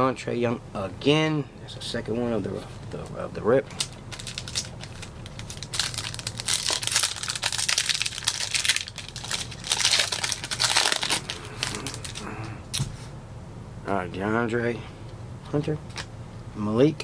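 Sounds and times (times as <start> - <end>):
foil pack crinkling and tearing: 3.7 - 12.3.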